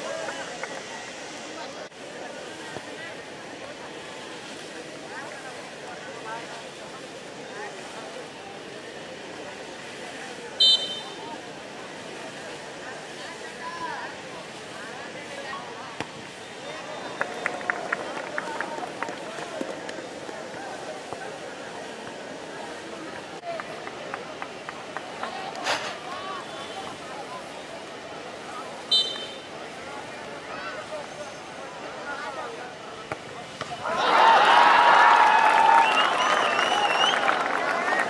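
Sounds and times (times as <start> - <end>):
crowd cheering and clapping: 16.9 - 20.6, 33.8 - 38.0.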